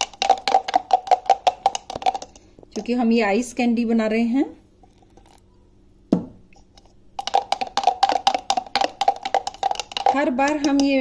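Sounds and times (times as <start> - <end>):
spoon scraping in grinder jar: 6.6 - 11.0.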